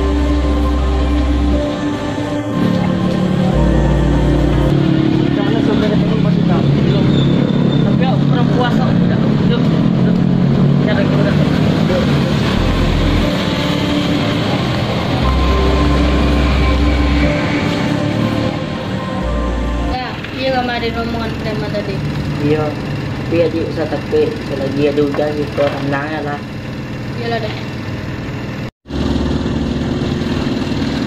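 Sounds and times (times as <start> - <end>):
background music: 0.0 - 25.1
vehicles passing: 0.0 - 31.0.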